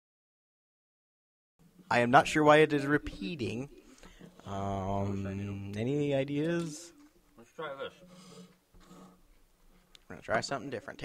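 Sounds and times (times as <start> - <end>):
faint steady hum: 1.6 - 11.0.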